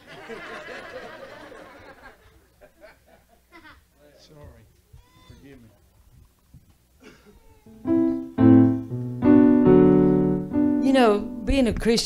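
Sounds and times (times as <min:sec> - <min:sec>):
piano chords on keyboard: 0:07.7 - 0:11.7.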